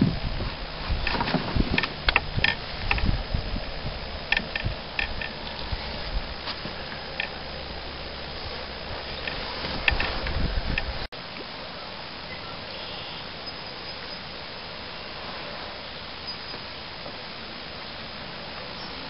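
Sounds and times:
low rumble: 0.0s - 11.1s
steady outdoor hiss: 0.0s - 19.0s
small clicks and knocks: 1.0s - 3.1s, 4.3s - 5.7s.

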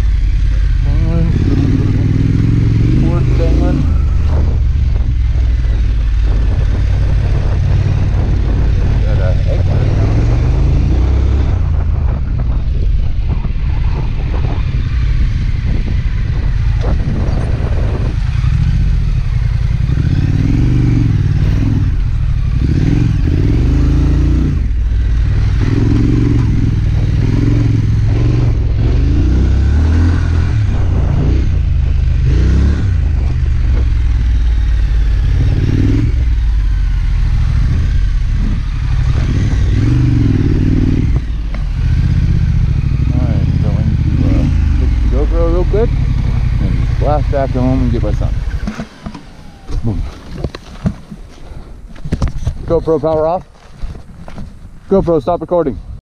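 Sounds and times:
motorcycle engine running: 0.0s - 56.0s
wind buffeting on microphone: 0.0s - 56.0s.

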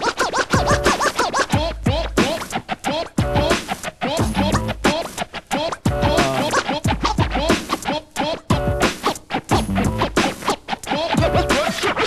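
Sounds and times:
turntable scratching: 0.0s - 12.0s.

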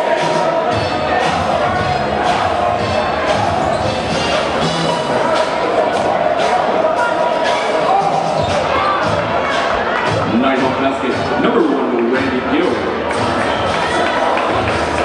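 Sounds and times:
crowd voices: 0.0s - 15.0s
music: 0.0s - 15.0s.

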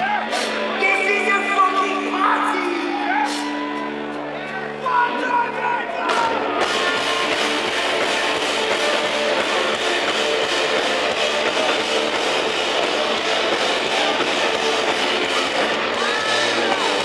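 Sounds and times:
electric guitar: 0.0s - 17.0s
live rock band playing: 0.0s - 17.0s.

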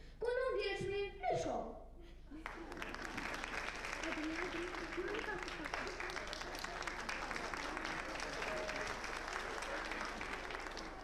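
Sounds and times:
audience applauding: 2.4s - 11.0s.

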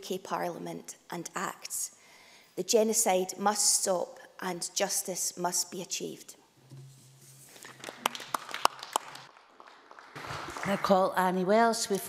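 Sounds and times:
people clapping: 7.5s - 11.3s.

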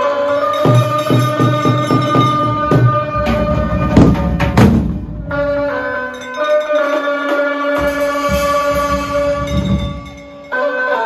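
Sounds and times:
loud held chord: 0.0s - 11.0s
fast drum roll: 0.6s - 5.7s, 7.8s - 10.3s.

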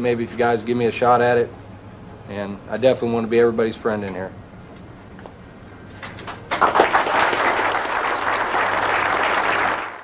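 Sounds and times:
crowd applauding: 6.5s - 10.0s.

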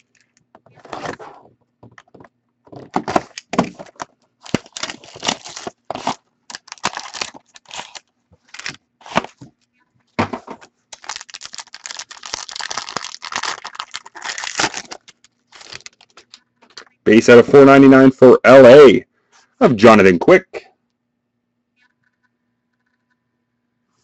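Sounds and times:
wrapper crinkling: 2.7s - 9.5s, 10.9s - 16.9s
card pack wrapper tearing: 2.9s - 9.4s, 10.9s - 16.8s.

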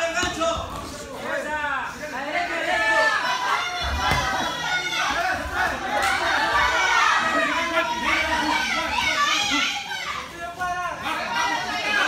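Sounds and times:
spectators shouting: 2.4s - 12.0s.

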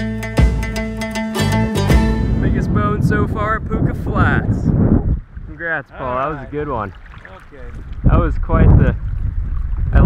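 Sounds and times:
wind buffeting microphone: 2.2s - 10.0s
man talking: 2.3s - 4.7s, 5.5s - 9.0s.

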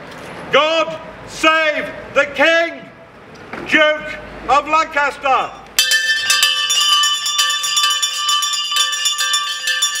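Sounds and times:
hand bells clanging: 5.8s - 10.0s.

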